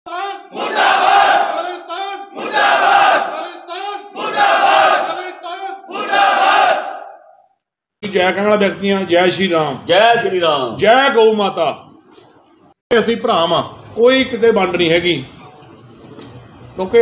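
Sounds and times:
group of men shouting: 0:00.2 - 0:07.3.

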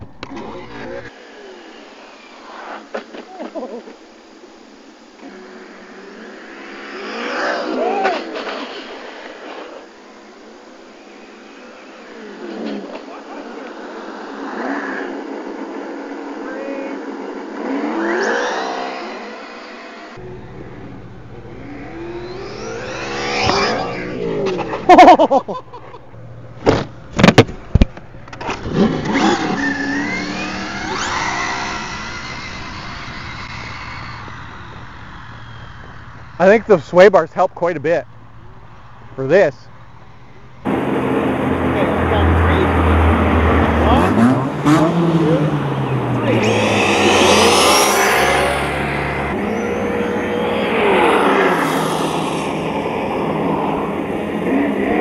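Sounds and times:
rc trucks revving past: 0:05.2 - 0:25.2, 0:28.3 - 0:36.6, 0:40.6 - 0:55.0.

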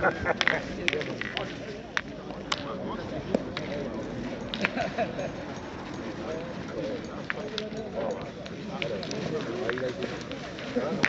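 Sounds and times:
murmur of voices: 0:00.0 - 0:11.0
steel boules clicking: 0:00.4 - 0:11.0.

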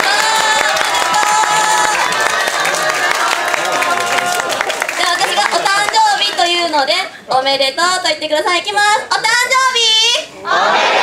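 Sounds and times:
audience cheering: 0:00.0 - 0:06.4
scattered clapping: 0:00.0 - 0:06.7.

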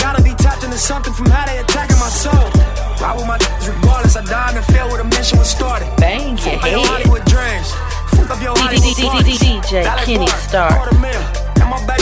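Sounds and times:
deep sub-bass: 0:00.0 - 0:12.0
hi-hats: 0:00.0 - 0:12.0
person rapping: 0:00.0 - 0:12.0.

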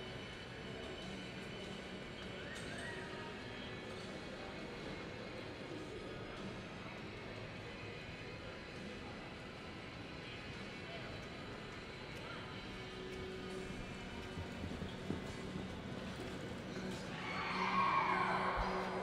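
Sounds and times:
murmur of voices: 0:00.0 - 0:19.0
horse hoofbeats on soft dirt: 0:12.2 - 0:17.2.

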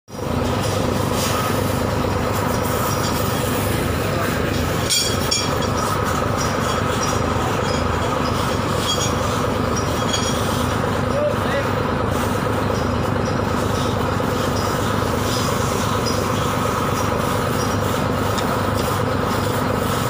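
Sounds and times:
diesel engine throbbing: 0:00.1 - 0:20.0
short metallic clinks: 0:04.8 - 0:10.6.

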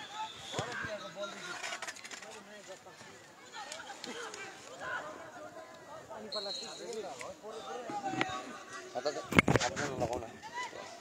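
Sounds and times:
players and spectators calling: 0:00.0 - 0:01.6, 0:03.0 - 0:09.3, 0:10.2 - 0:11.0.

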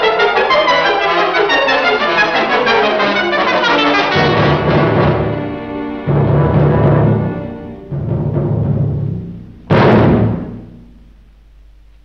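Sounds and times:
orchestral chords with timpani: 0:00.0 - 0:11.2
soundtrack hiss: 0:00.0 - 0:12.0.

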